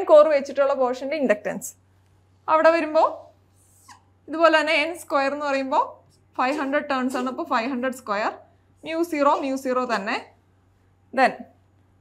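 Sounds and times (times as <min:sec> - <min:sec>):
woman speaking: 0:00.0 - 0:01.8, 0:02.4 - 0:03.4, 0:04.3 - 0:10.4, 0:11.1 - 0:11.6.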